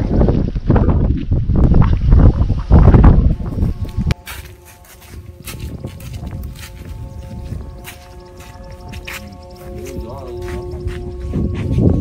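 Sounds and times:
wind buffeting microphone: 0.0s - 12.0s
kite flutes droning: 3.0s - 12.0s.

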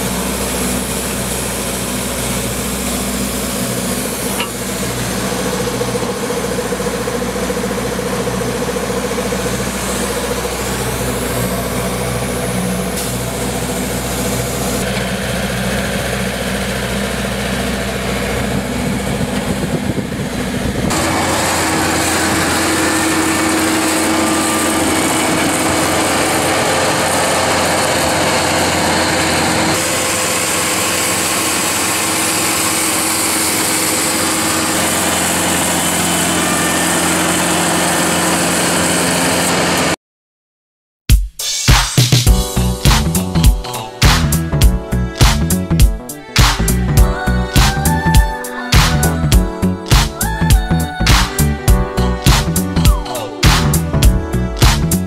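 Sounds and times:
line-marking machine engines running: 0.0s - 40.0s.

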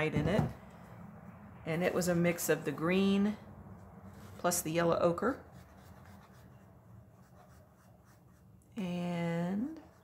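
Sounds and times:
low room hum: 0.0s - 10.0s
paintbrush scratching on paper: 5.2s - 10.0s.

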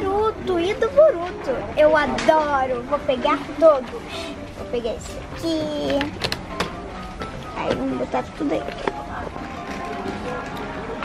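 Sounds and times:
faint music: 0.0s - 11.0s
murmur of distant voices: 0.0s - 11.0s.

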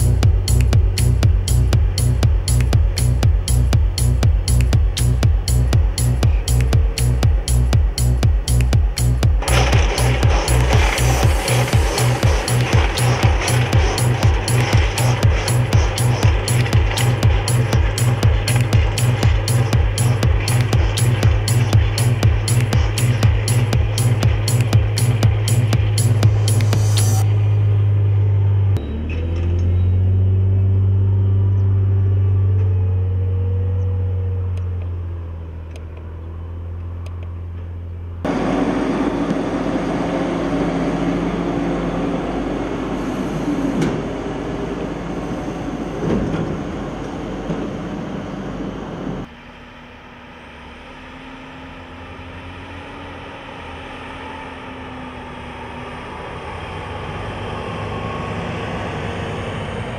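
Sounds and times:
rough engine and machinery noise: 0.0s - 59.9s
tractor engine drone: 0.0s - 59.9s.

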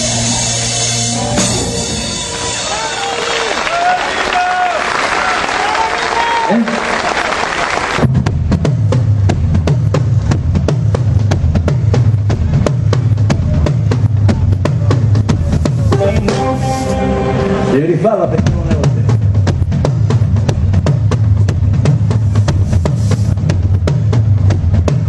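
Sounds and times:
bass guitar line: 0.0s - 3.9s, 8.0s - 25.0s
crowd and stage noise: 0.0s - 25.0s
drums: 0.0s - 25.0s
person singing: 15.8s - 17.8s.

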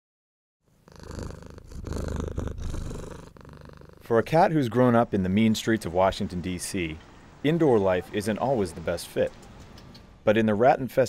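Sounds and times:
cat purring: 0.6s - 5.2s.

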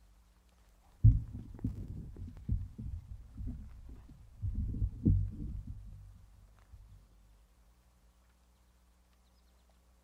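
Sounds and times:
microphone handling thumps: 1.0s - 6.2s.

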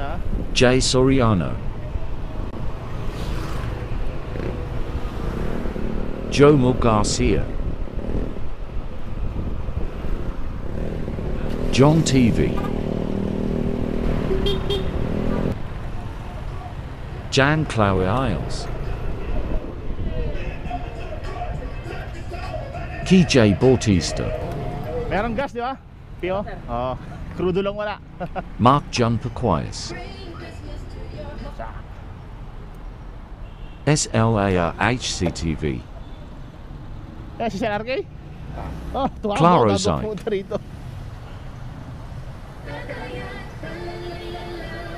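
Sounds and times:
man speaking: 0.0s - 1.7s, 6.3s - 7.5s, 11.7s - 12.7s, 17.3s - 18.8s, 21.8s - 28.0s, 28.6s - 30.0s, 33.9s - 35.9s, 39.0s - 40.6s
low rumble of vehicle engines: 0.0s - 44.9s
horn toots: 11.4s - 13.1s, 14.2s - 15.5s.

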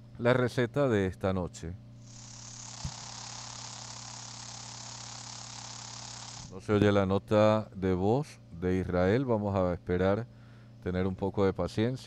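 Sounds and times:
low mains hum: 0.0s - 12.0s
steady hiss: 2.0s - 6.6s.

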